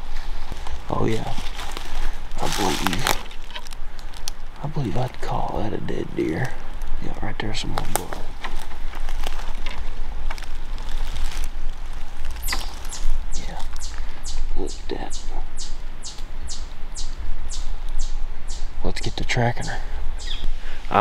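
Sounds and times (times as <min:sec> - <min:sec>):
footsteps in dry leaves: 0:00.0 - 0:05.1, 0:07.7 - 0:14.2
camera handling rumble: 0:07.7 - 0:13.0
high falling chirp: 0:12.4 - 0:20.5.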